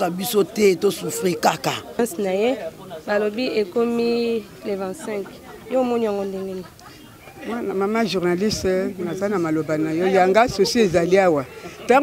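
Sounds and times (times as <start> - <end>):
chatter of people: 0.0 - 12.0
woman talking: 2.0 - 6.8.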